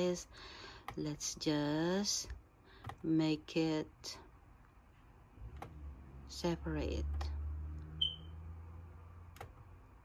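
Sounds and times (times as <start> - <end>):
short high beep: 8.0 - 8.3.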